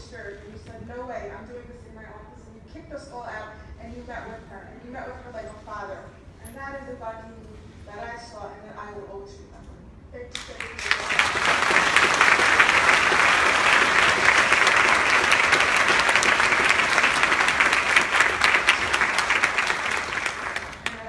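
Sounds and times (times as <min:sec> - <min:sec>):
audience applauding: 0:10.6 - 0:21.0.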